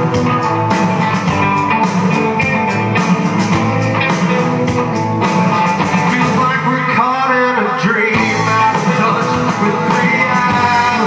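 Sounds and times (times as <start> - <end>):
drum kit playing: 0.0 - 7.2, 8.1 - 11.0
distorted electric guitar chords: 0.0 - 11.0.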